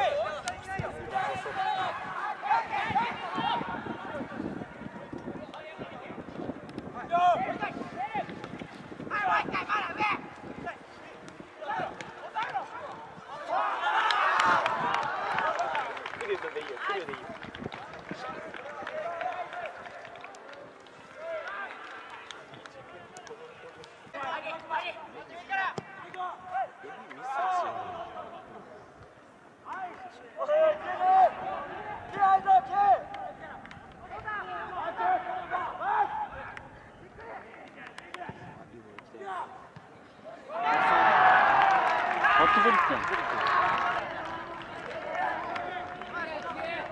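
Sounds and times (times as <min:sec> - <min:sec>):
people shouting outdoors: 0:00.0 - 0:04.3, 0:11.6 - 0:15.9, 0:29.7 - 0:36.6, 0:40.3 - 0:46.9.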